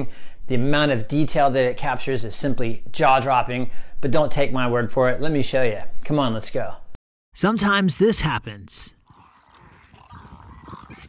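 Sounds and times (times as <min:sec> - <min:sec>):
wading birds calling: 0:09.0 - 0:11.0.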